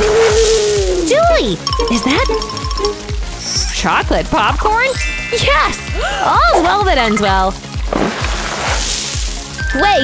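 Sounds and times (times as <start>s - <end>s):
upbeat background music: 0.9s - 10.0s.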